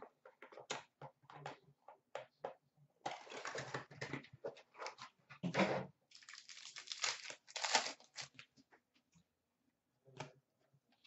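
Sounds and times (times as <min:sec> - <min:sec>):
wrappers crinkling and tearing: 0:06.1 - 0:08.4.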